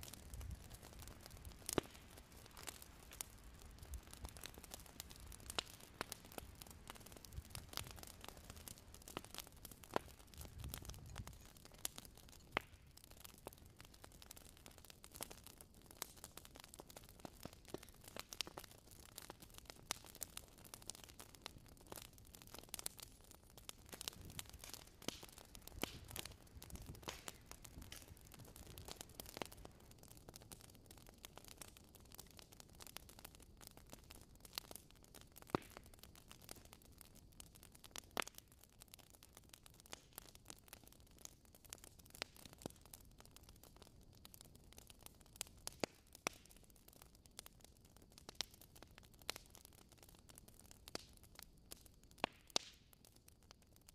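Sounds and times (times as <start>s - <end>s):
wood fire crackling: 0.0s - 53.9s.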